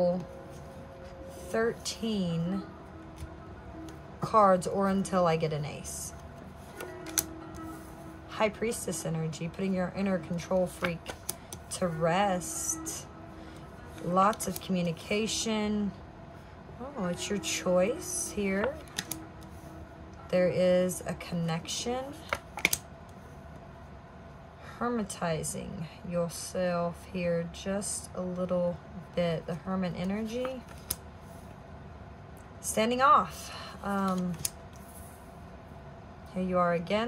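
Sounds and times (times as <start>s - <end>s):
soft background music: 0.0s - 37.0s.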